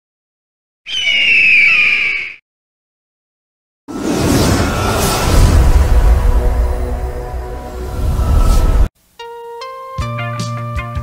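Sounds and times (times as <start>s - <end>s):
bird of prey screech: 0.9s - 2.4s
rushing swell with deep low end: 3.9s - 8.9s
soundtrack music: 3.9s - 8.9s.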